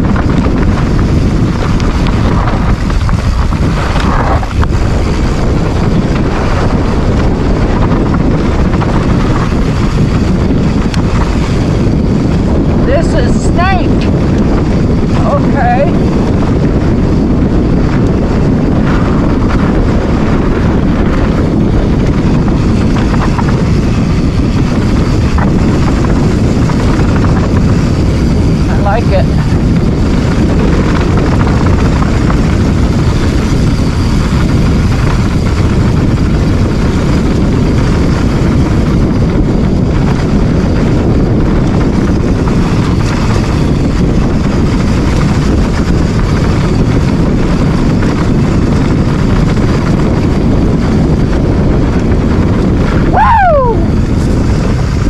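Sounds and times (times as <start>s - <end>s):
mountain bike tyre noise on dirt: 0.0s - 55.0s
wind rumble on microphone: 0.0s - 55.0s.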